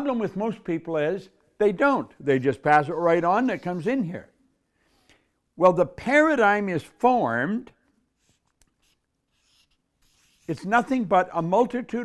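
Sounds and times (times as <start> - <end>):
marker scratching on paper: 2.9 - 4.1, 8.2 - 11.1.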